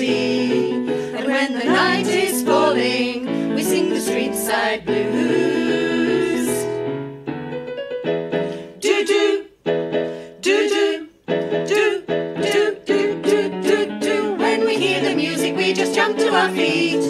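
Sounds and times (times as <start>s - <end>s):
women singing in harmony: 0.0s - 6.8s, 8.7s - 9.5s, 10.4s - 17.0s.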